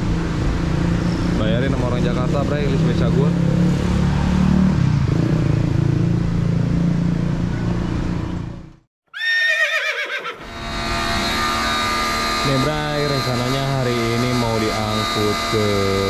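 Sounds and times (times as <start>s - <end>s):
road traffic engines: 0.0s - 8.9s, 10.4s - 16.0s
pressure washer motor whine: 10.4s - 16.0s.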